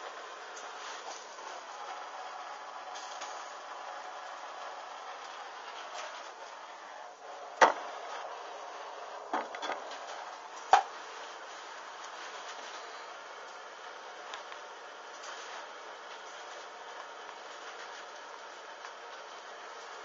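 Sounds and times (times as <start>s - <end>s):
fabric burning with low hiss: 0.0s - 20.0s
sharp crackles: 7.6s - 20.0s.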